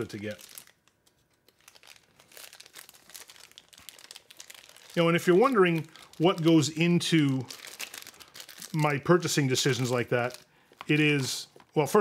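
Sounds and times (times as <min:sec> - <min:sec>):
packaging crinkling and clicking: 0:00.1 - 0:11.8.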